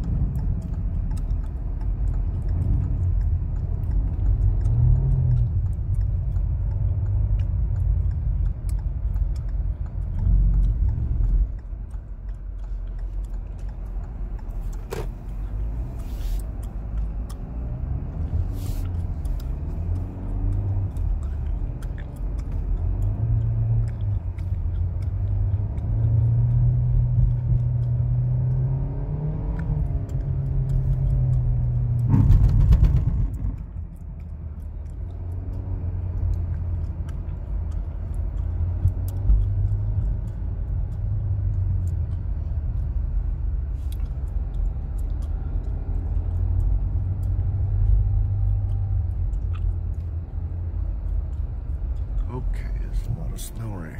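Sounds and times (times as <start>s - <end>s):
engine and road drone: 0.0s - 53.9s.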